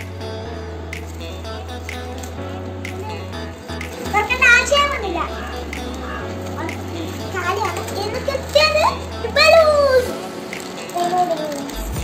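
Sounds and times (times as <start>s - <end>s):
background music with bass: 0.0s - 12.0s
girl speaking: 4.0s - 10.2s, 10.9s - 11.8s.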